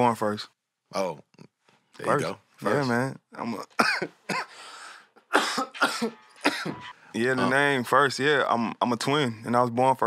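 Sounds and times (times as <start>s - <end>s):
man coughing: 3.8s - 4.7s, 5.3s - 7.6s
breathy intake: 4.4s - 5.1s.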